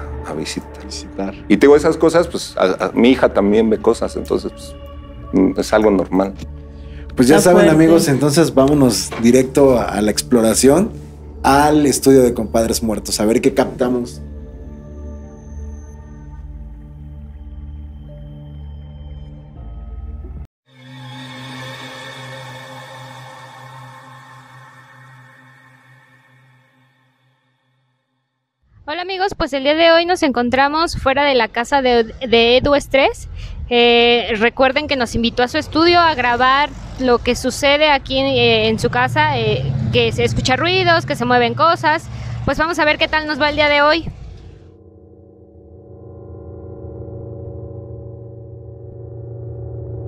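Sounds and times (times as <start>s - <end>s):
held chord of music: 0.0s - 27.5s, 44.4s - 50.0s
low soundtrack drone: 0.0s - 27.5s, 31.8s - 50.0s.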